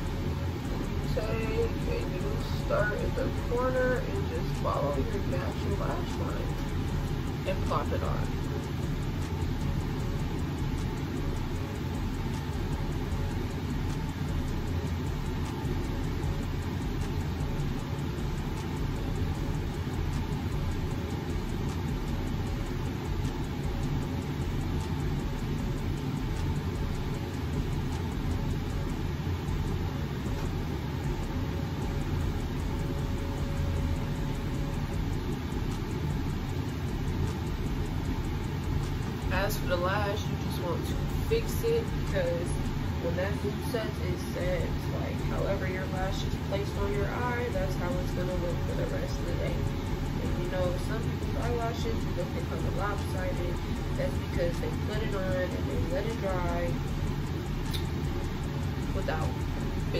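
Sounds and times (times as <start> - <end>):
faint constant hum: 0.0 - 59.9.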